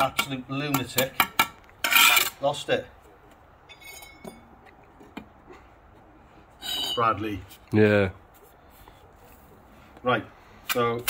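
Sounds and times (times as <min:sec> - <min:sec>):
trowel scraping on bricks: 0:01.8 - 0:02.4.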